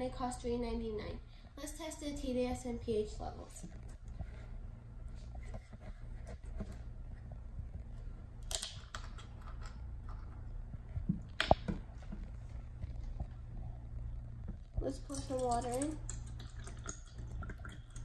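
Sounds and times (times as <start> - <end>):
steady low hum: 0.0 - 18.0.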